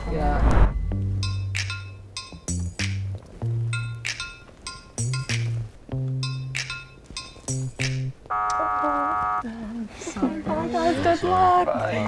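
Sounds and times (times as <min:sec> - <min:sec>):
buzzer-like tone: 0:08.3 - 0:09.4.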